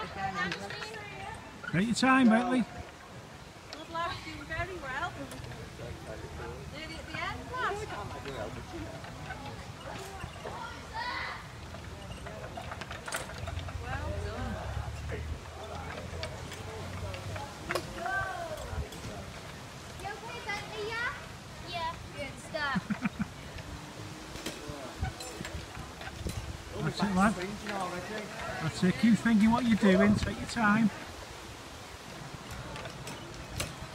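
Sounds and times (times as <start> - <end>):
distant voices talking: 0.0 - 33.9.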